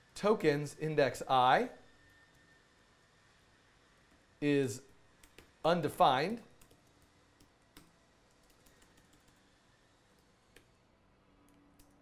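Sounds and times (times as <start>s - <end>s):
faint laptop keystrokes: 5.2s - 5.6s, 6.3s - 9.4s.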